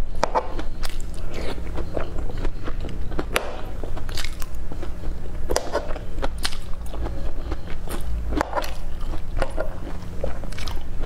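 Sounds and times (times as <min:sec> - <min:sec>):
crunchy chewing of broccoli: 0:00.0 - 0:11.0
steady low hum: 0:00.0 - 0:11.0.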